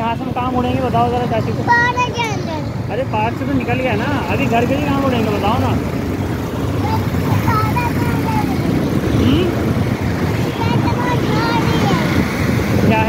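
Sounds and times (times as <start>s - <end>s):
motorcycle running on road: 0.0s - 13.0s
wind rushing over microphone: 4.2s - 13.0s.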